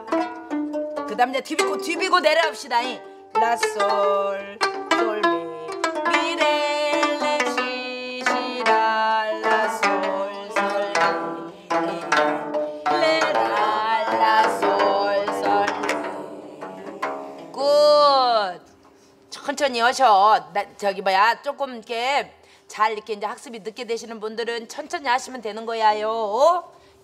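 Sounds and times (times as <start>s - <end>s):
zither strings plucked: 0.0s - 18.1s.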